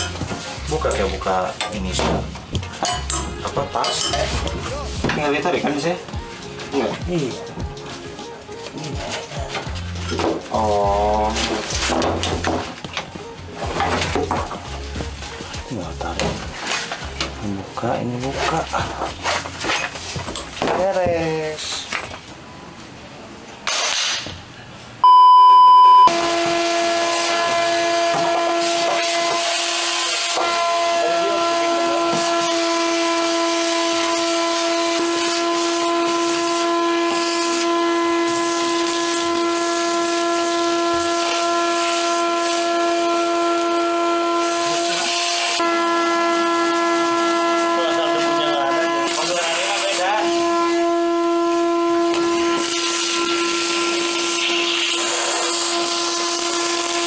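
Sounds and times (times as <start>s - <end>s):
test-tone beep: 25.0s - 26.1s
vacuum cleaner whining: 25.0s - 57.0s
nozzle sucking grit: 26.1s - 57.0s.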